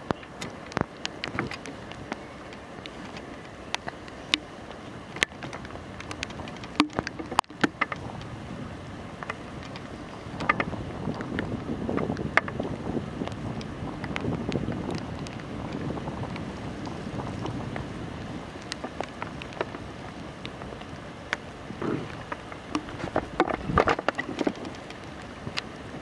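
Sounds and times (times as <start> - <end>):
light clicks and taps: 0.0 - 8.3, 9.2 - 21.5, 22.1 - 25.8
wind buffeting microphone: 0.0 - 26.0.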